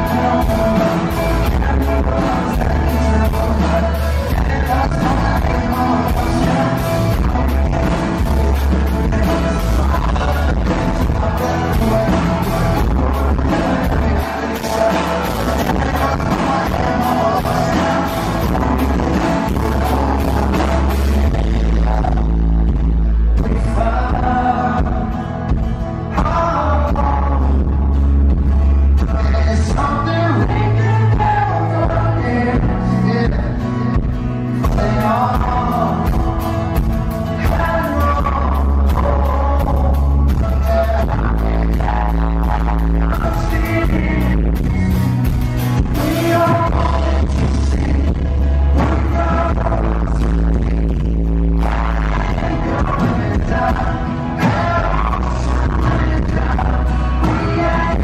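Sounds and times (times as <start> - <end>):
acoustic guitar: 0.0 - 58.0
drums: 0.0 - 58.0
electric bass: 0.0 - 58.0
man singing: 0.0 - 58.0.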